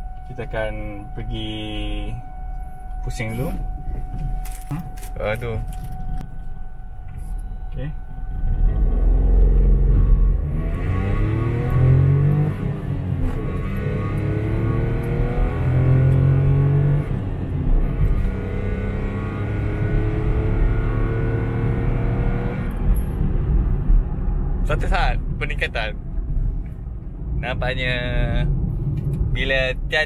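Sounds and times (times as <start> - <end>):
car engine accelerating: 3.0 - 30.0.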